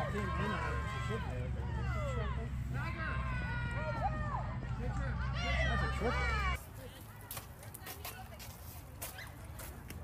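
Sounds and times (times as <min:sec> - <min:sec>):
girls yelling and cheering: 0:00.0 - 0:07.4.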